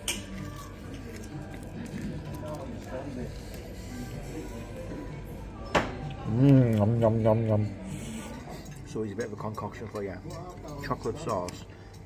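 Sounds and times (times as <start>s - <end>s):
faint chatter of voices: 0.0s - 12.0s.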